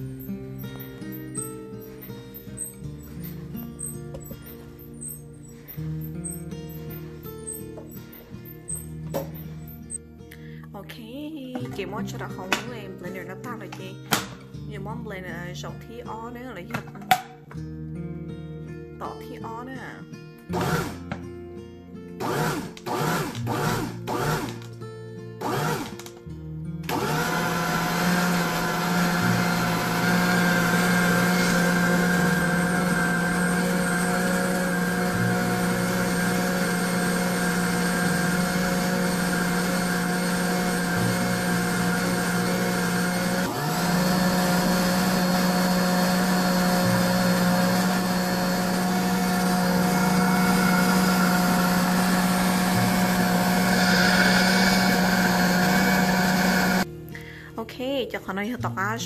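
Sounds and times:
food processor motor humming: 20.5 - 21.1, 22.2 - 24.7, 25.4 - 26.1, 26.9 - 56.9.

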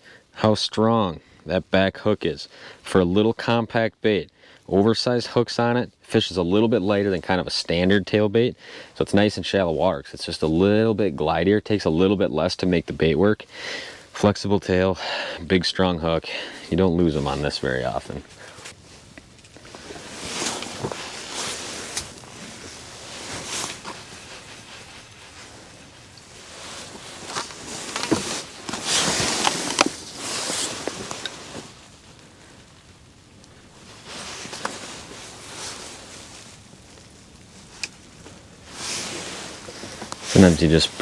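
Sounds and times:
winter clothing rustling: 15.2 - 41.0.

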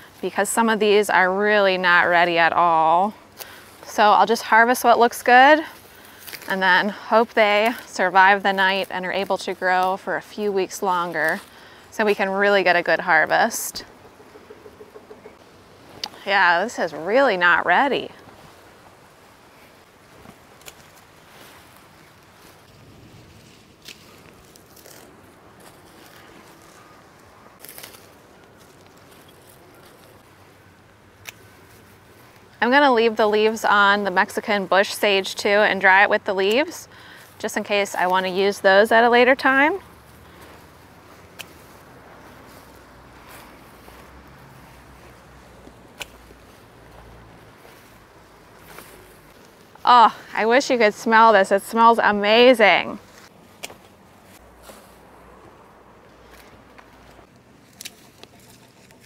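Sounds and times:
flower stems rustling: 0.0 - 14.0, 15.2 - 59.0
faint outdoor hush: 36.6 - 37.8.

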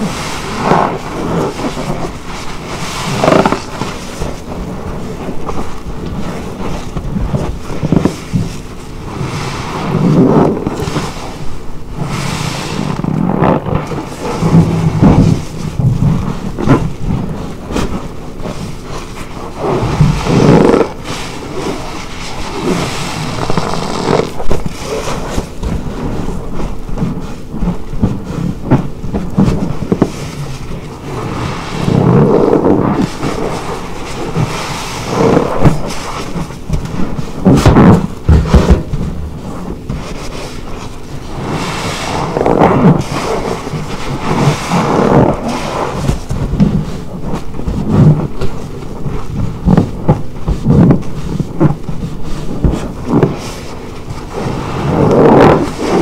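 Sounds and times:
sponge squelching in soapy foam: 0.0 - 56.0.

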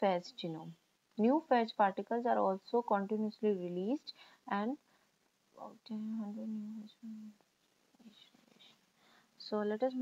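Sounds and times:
person speaking: 5.5 - 8.8.

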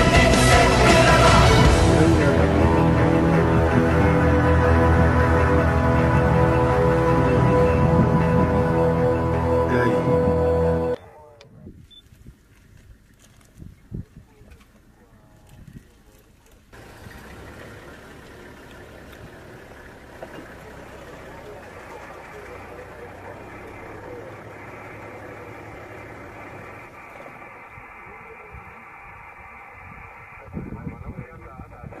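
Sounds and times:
murmur of voices: 20.4 - 29.0.

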